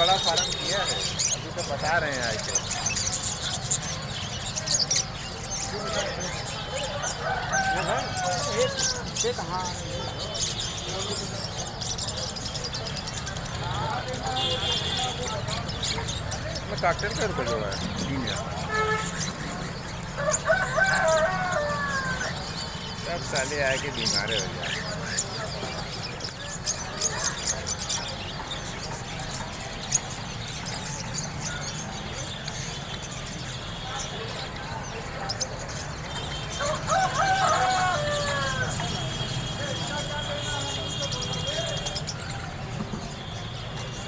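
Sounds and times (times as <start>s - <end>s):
drawn-out falling bird call: 0.0s - 34.5s, 35.7s - 44.0s
caged birds chirping: 0.0s - 44.0s
rooster crowing: 5.9s - 9.3s, 20.2s - 22.6s, 36.5s - 39.0s.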